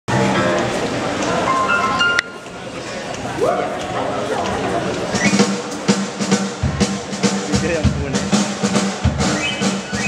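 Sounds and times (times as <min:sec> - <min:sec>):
live band playing: 0:00.1 - 0:10.0.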